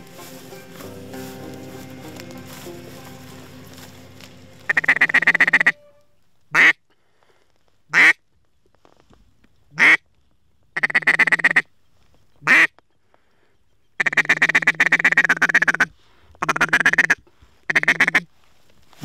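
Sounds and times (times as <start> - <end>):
duck quacking: 0.0 - 6.8, 7.9 - 8.2, 9.8 - 10.0, 10.8 - 11.6, 12.4 - 12.7, 14.0 - 18.3.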